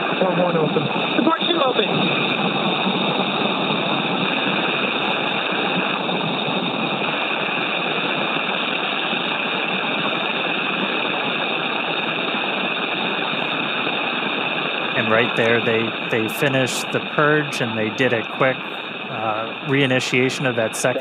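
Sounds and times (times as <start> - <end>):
radio hiss: 0.0 - 21.0.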